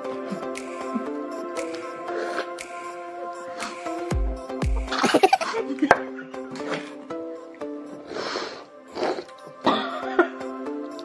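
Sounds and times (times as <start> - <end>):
background music with held notes: 0.0 - 11.0
person coughing: 4.9 - 7.0, 9.6 - 10.4.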